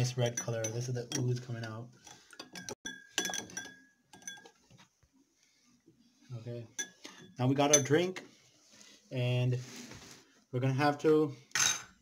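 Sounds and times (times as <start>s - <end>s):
spoon clinking in glass: 2.4s - 4.5s.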